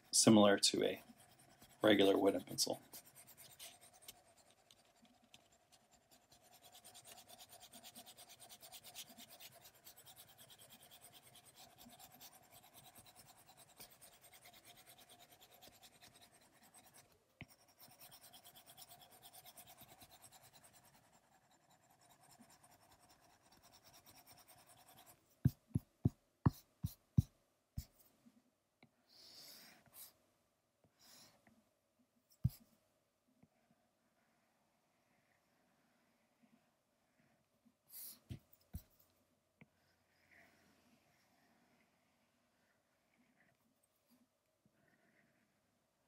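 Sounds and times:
stylus scratching on glass screen: 0.0 - 25.6.

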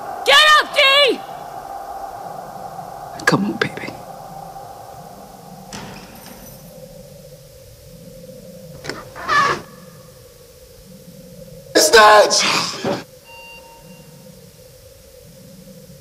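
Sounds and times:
steady ringing tone: 1.2 - 8.8, 13.1 - 16.0
muffled voices: 2.3 - 4.7.

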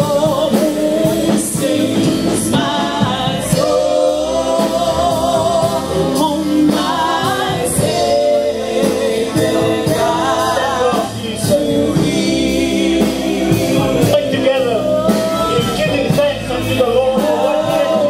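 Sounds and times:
group singing gospel song: 0.0 - 18.0
instrumental backing: 0.0 - 18.0.

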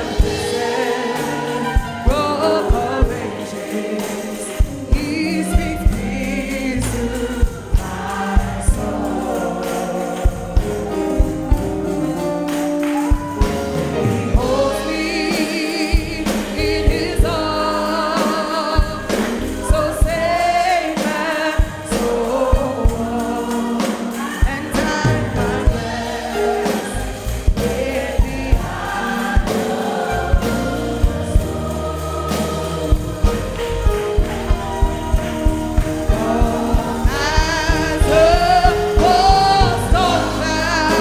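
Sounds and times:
congregation singing gospel: 0.0 - 41.0
bass guitar: 5.0 - 18.2, 18.8 - 21.0, 21.6 - 29.5, 30.1 - 41.0.

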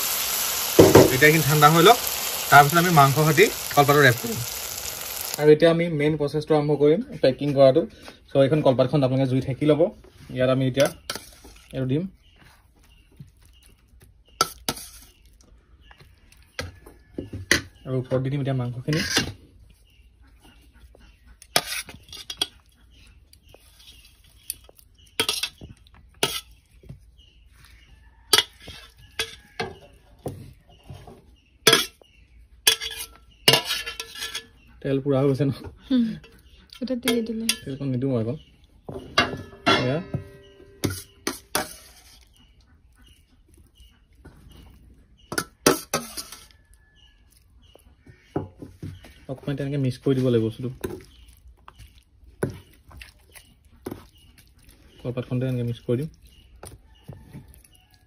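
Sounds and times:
food sizzling in oil: 0.0 - 5.6, 40.3 - 42.2
spoon scraping steel plate: 14.4 - 15.2, 18.9 - 19.4, 21.4 - 22.7, 23.8 - 25.6, 26.2 - 26.6, 32.7 - 34.7, 39.2 - 42.4, 45.3 - 47.1
spoon stirring: 40.1 - 42.4, 45.2 - 47.8, 49.9 - 58.0.

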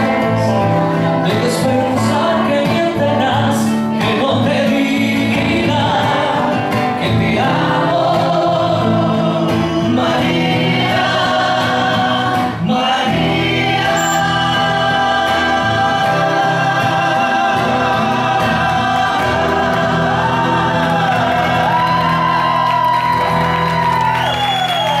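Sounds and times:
men singing into microphones: 0.0 - 22.5
backing music: 0.0 - 22.6.

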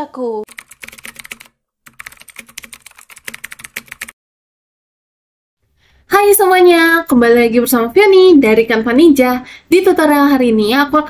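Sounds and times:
keyboard typing: 0.5 - 4.2.

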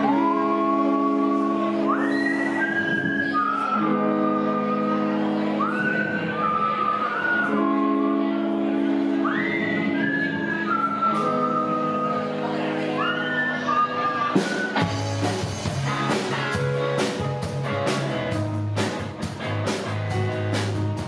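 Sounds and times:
live rock band: 0.0 - 21.0.

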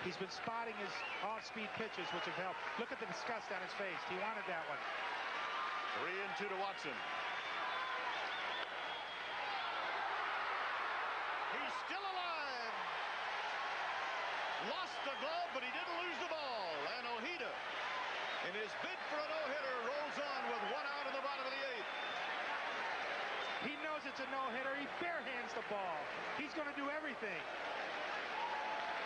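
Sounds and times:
crowd yelling and cheering: 0.0 - 29.0
whistles: 0.9 - 2.4, 7.3 - 9.5, 14.7 - 15.5, 21.8 - 22.4, 23.3 - 24.3.

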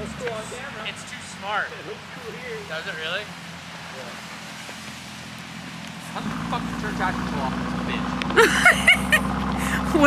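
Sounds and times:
car engine at low revs: 0.0 - 10.0.

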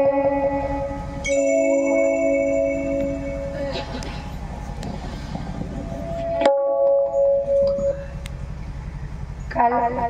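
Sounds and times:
held musical note: 0.0 - 4.8
sound system hum: 0.0 - 10.0
faint murmur: 2.8 - 6.4.

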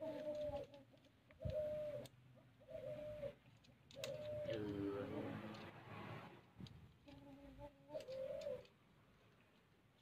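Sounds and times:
bird low calls: 1.4 - 3.4, 4.0 - 4.8.

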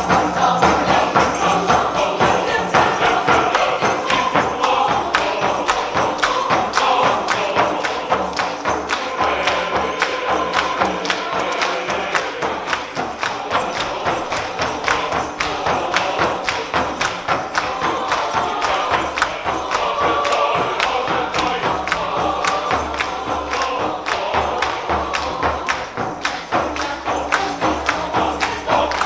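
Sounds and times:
frame drum beat: 0.0 - 29.0
mixed choir singing: 0.0 - 29.0.

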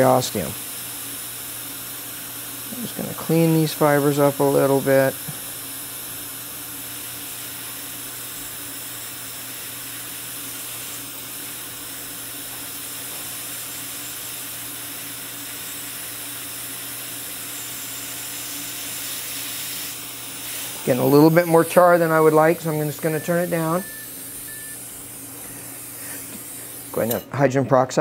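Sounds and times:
dental suction hissing: 0.0 - 27.2.

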